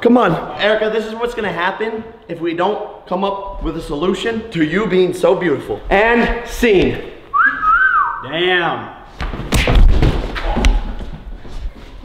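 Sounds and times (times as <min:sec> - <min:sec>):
heavy thuds and scuffling: 0:09.2 - 0:12.0.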